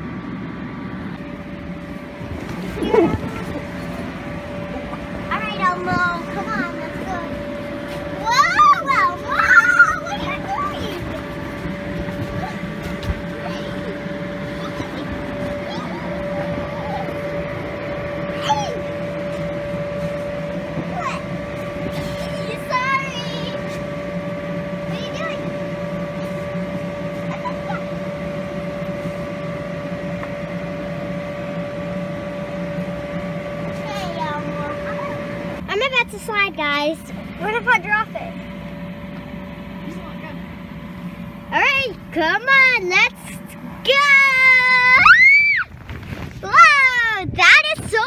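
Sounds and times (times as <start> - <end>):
inflation blower humming: 0.0 - 48.0.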